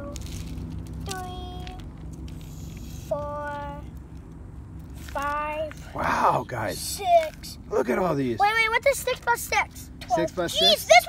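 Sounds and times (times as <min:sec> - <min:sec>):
low background rumble: 0:00.0 - 0:11.0
child's drawn-out vocal sounds: 0:01.1 - 0:01.8, 0:02.7 - 0:03.9.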